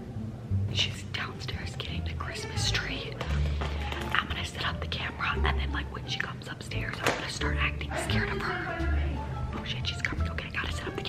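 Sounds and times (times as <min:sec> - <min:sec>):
faint background music: 0:00.0 - 0:11.0
woman whispering: 0:00.7 - 0:03.2.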